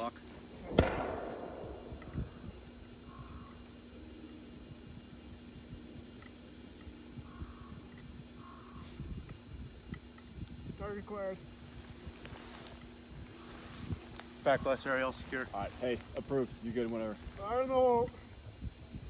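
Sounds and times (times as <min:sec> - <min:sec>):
faint steady hum: 0:00.0 - 0:19.0.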